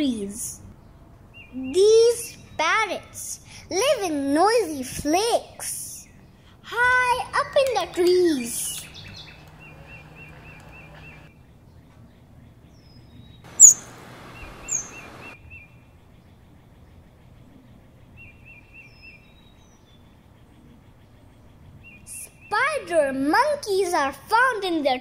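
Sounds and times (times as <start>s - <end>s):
forest birds chirping: 5.9s - 22.6s
faint background hiss: 13.5s - 16.3s.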